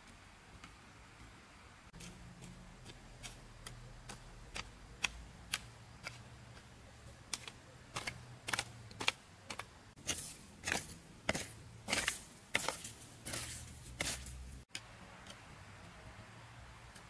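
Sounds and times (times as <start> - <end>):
hoe chopping into soil: 7.3 - 14.4.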